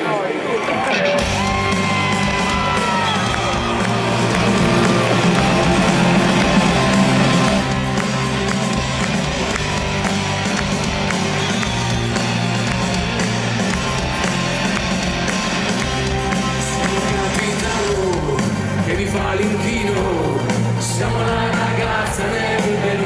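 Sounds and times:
rock band playing live: 0:00.8 - 0:23.0.

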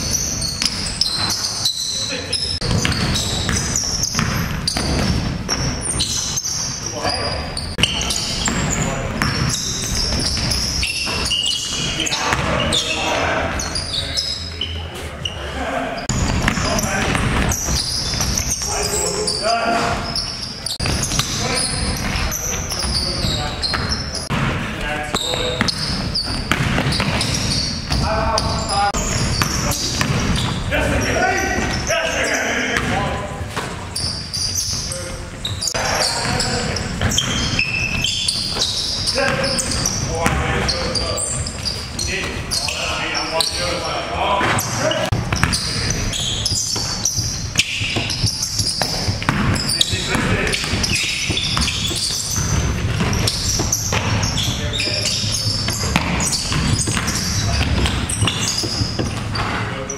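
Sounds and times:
players calling and shouting: 0:00.0 - 0:59.9
basketball bouncing on hardwood: 0:02.6 - 0:05.7, 0:23.7 - 0:28.0, 0:29.2 - 0:30.6, 0:45.2 - 0:45.8, 0:46.4 - 0:54.6, 0:55.6 - 0:59.5.

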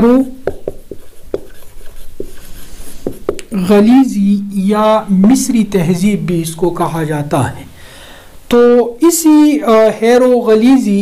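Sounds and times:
marker writing on whiteboard: 0:00.0 - 0:03.6.

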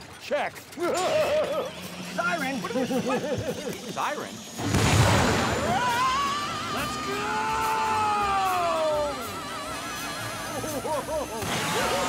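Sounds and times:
whimsical film music: 0:00.0 - 0:12.0
siren-like warble: 0:01.0 - 0:12.0.

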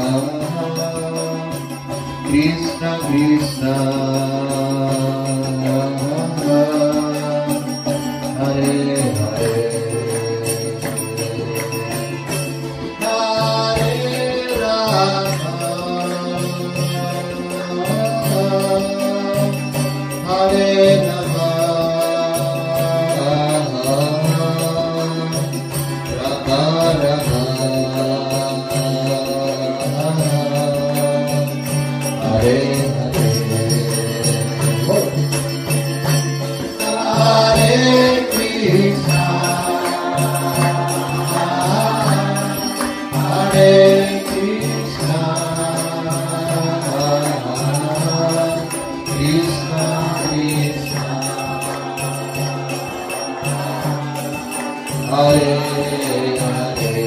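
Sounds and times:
harmonium chords: 0:00.0 - 0:57.0
two-headed drum beating: 0:00.0 - 0:57.0
voices singing a chant: 0:00.0 - 0:57.0.

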